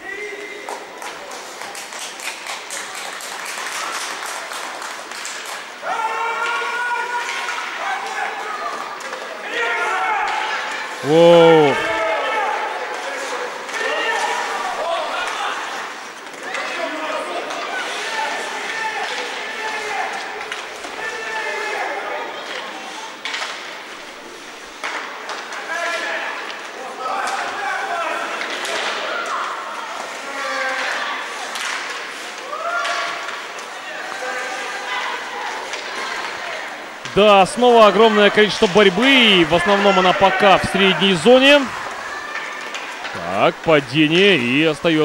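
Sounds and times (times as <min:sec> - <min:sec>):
voices calling and shouting: 0:05.8 - 0:16.0, 0:34.5 - 0:45.0
puck and sticks hitting boards: 0:06.4 - 0:07.7, 0:17.4 - 0:21.0, 0:24.8 - 0:26.6, 0:28.3 - 0:29.3, 0:30.6 - 0:34.2.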